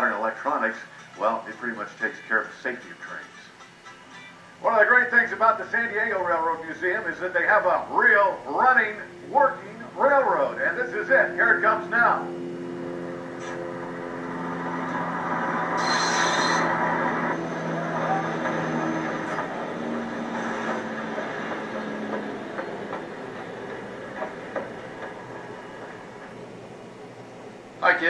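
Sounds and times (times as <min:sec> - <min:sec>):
high whine: 0:00.0 - 0:28.0
train wheels on rails: 0:13.2 - 0:27.8.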